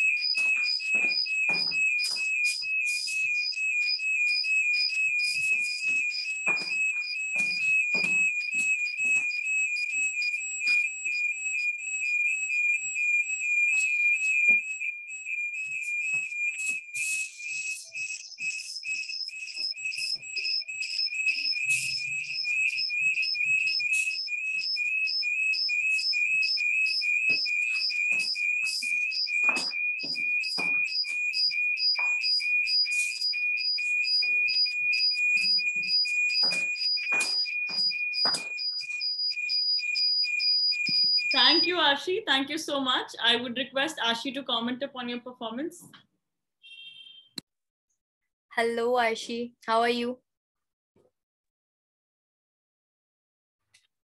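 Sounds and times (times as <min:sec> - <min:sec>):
high-pitched pulsing whistling tone: 0:00.0 - 0:09.3, 0:16.5 - 0:39.0, 0:40.4 - 0:41.7.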